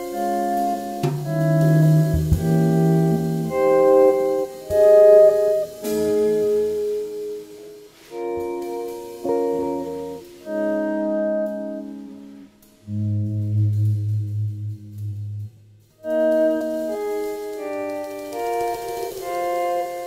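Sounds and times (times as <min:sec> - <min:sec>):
deep sustained bass note: 0:01.0 - 0:03.5, 0:12.9 - 0:15.6.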